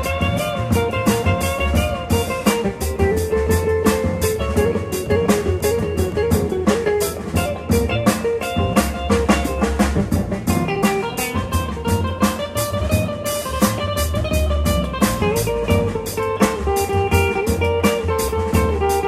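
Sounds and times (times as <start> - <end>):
drum kit with cymbals: 0.0 - 19.0
electric guitar melody: 0.0 - 19.0
upright bass: 0.0 - 19.0.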